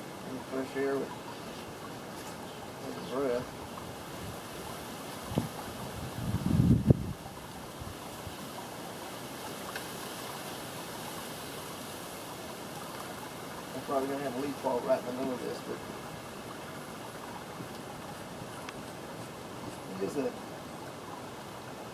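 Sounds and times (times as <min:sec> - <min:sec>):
steady outdoor noise: 0:00.0 - 0:21.9
wind buffeting microphone: 0:03.5 - 0:08.4
low rumbling gust: 0:05.3 - 0:07.2.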